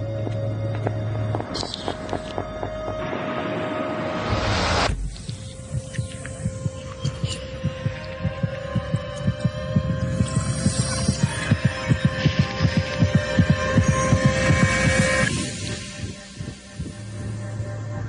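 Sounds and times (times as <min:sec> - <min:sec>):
low throbbing pulses: 0:00.0 - 0:18.0.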